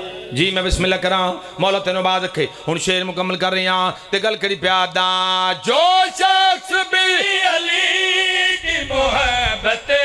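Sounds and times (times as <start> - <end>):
men chanting into a microphone: 0.0 - 10.0.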